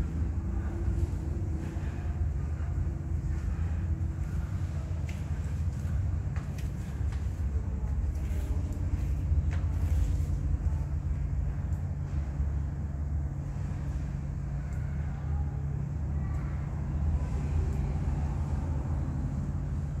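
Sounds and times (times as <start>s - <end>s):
fluctuating low rumble: 0.0s - 20.0s
steady low hum: 0.0s - 20.0s.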